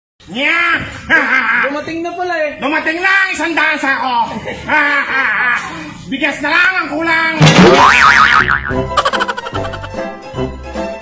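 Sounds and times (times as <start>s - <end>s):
wobbling comedic sound effect: 7.4s - 10.0s.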